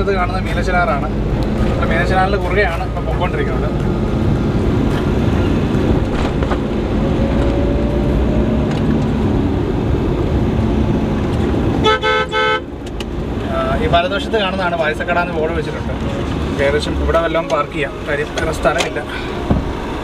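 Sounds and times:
car road and engine noise: 0:00.0 - 0:20.0
vehicle horn toots: 0:11.8 - 0:12.7.

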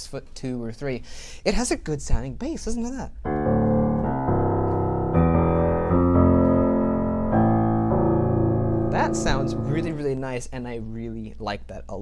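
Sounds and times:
low piano chords: 0:03.2 - 0:10.2.

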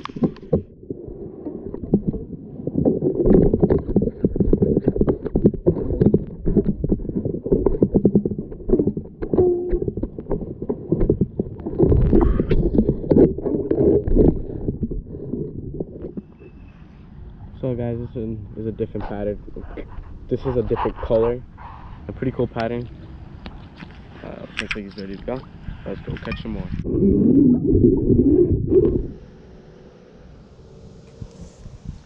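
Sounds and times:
sharp underwater clicks and knocks: 0:00.0 - 0:00.8, 0:01.5 - 0:16.3, 0:23.4 - 0:25.5
muffled underwater current gurgling: 0:00.0 - 0:16.6, 0:24.9 - 0:30.0.

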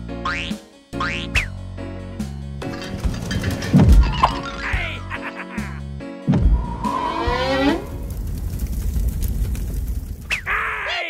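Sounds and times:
rising sliding sound: 0:06.3 - 0:08.4
falling whistle-like glide: 0:06.4 - 0:08.1
cartoon fire crackling: 0:07.4 - 0:11.0.

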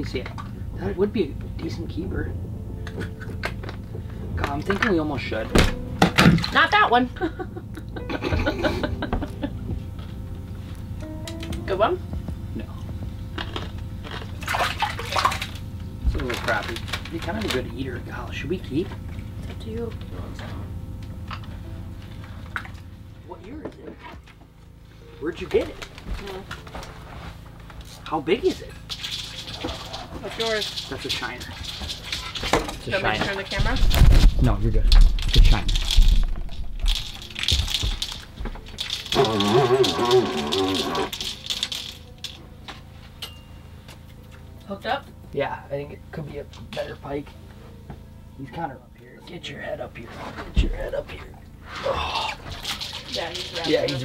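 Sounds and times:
steady low hum: 0:00.0 - 0:54.0
water splashing and dripping: 0:14.1 - 0:16.8, 0:28.6 - 0:34.1, 0:35.0 - 0:42.4, 0:52.3 - 0:54.0
sharp cracks and knocks: 0:33.6 - 0:39.9.

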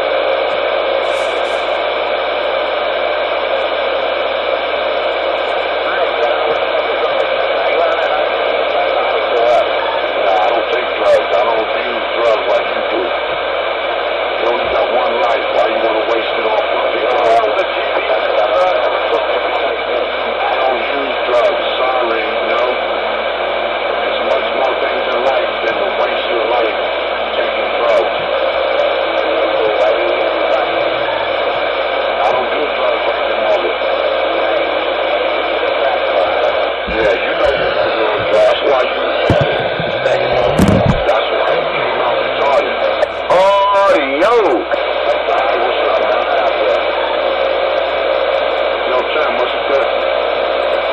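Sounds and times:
whistling radio tones: 0:00.0 - 0:13.4, 0:14.2 - 0:50.9
garbled radio voices: 0:00.0 - 0:50.9.

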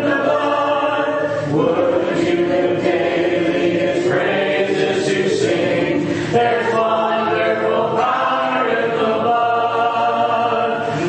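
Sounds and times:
congregation singing a cappella: 0:00.0 - 0:11.0.

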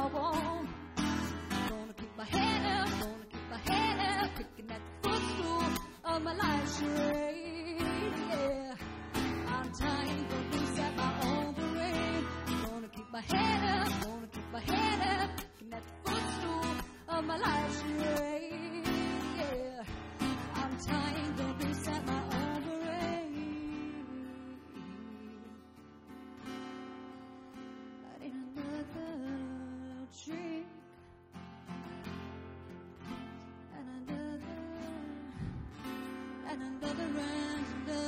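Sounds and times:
woman singing: 0:00.0 - 0:25.8, 0:28.0 - 0:31.2, 0:33.3 - 0:38.0
acoustic guitar strummed: 0:00.0 - 0:38.0.

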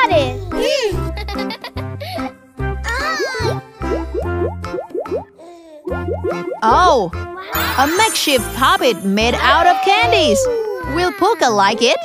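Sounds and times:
children's background music: 0:00.0 - 0:12.0
cartoon pop sound effects: 0:03.0 - 0:05.3, 0:05.9 - 0:06.6.

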